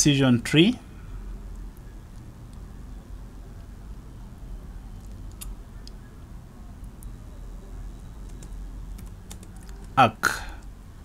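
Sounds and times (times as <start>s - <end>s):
computer keyboard typing: 8.0s - 10.0s.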